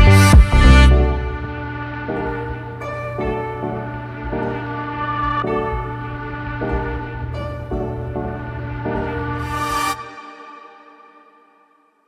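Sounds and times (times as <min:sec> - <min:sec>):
slow tune of held notes: 0:00.0 - 0:12.0
steady low hum: 0:00.1 - 0:10.2.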